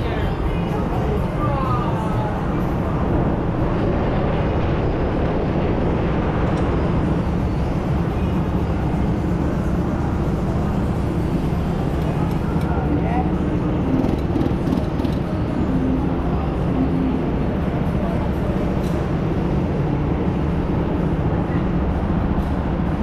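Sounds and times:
go-kart engines droning: 0.0 - 22.9.

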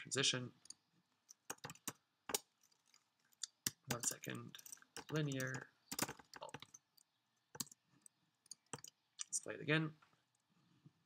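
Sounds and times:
computer keyboard keystrokes: 1.3 - 3.0, 3.7 - 7.8, 8.5 - 9.0.

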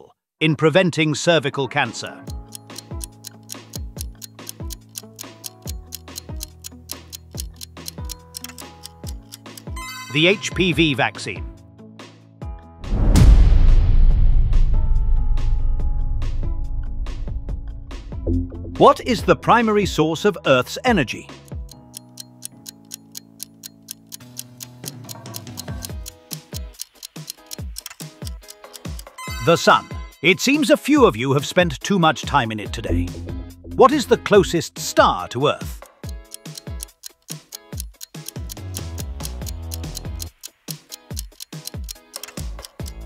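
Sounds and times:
clock-like ticking: 2.3 - 10.9, 20.9 - 29.9, 32.8 - 34.6, 35.6 - 43.0
soft synth chord music: 9.7 - 11.0, 18.1 - 19.5, 29.2 - 30.0, 32.9 - 34.4
deep thud: 12.8 - 18.3
low held bass tone: 14.4 - 19.2, 32.9 - 34.4.

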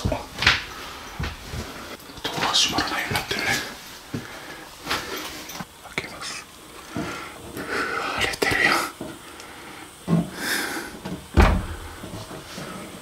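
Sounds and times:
person breathing heavily: 0.6 - 2.0, 2.8 - 5.5, 6.8 - 13.0.

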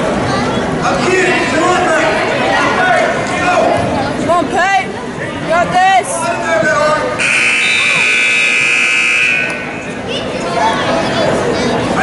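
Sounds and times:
spectators and coaches talking: 0.0 - 12.0
electronic timer buzzer: 7.2 - 9.8.

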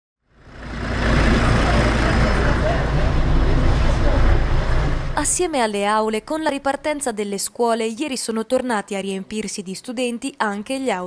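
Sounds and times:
bus engine rumbling: 0.3 - 7.3
faint passenger voices: 1.2 - 5.1.

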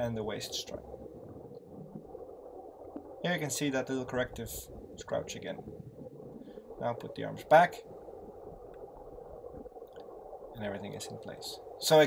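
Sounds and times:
underwater bubbles gurgling: 0.0 - 12.0.

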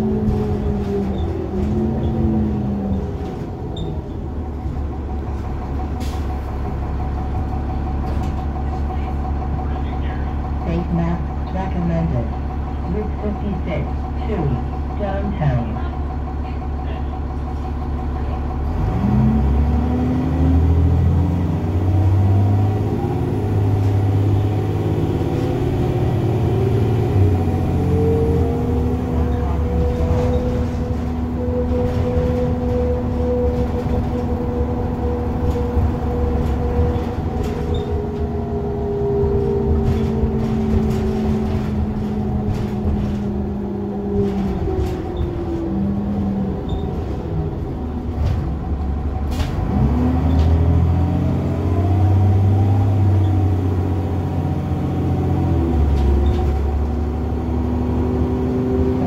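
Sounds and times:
bus diesel engine accelerating: 0.0 - 59.0.

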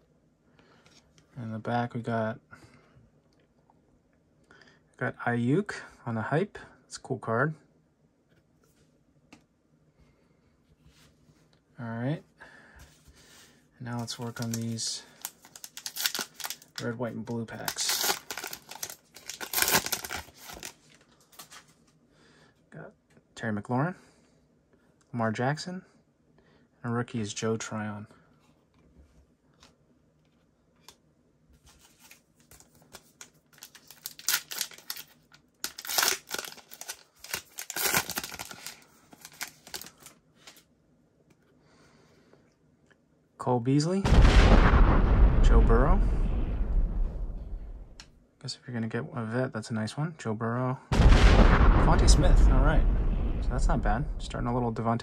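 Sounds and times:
plastic wrapper crinkling and tearing: 13.9 - 21.7, 31.8 - 40.7.

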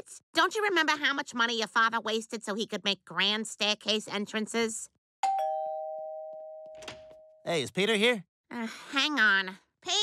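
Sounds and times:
two-note doorbell chime: 5.2 - 7.4.

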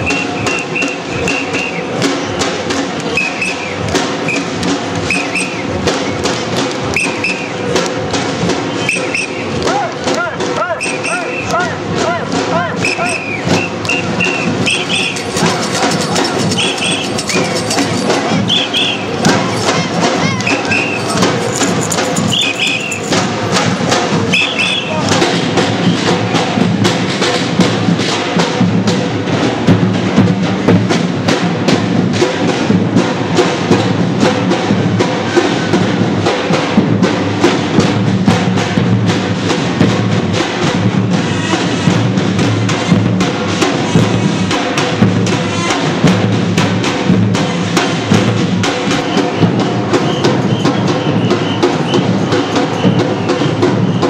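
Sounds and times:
short high whistle blasts: 0.0 - 1.8, 3.1 - 4.5, 5.1 - 5.6, 12.8 - 15.5, 16.5 - 17.6, 18.5 - 19.1, 20.4 - 23.1, 24.3 - 24.9
crowd voices: 0.0 - 54.0
drums beating fast rhythm: 0.0 - 54.0.

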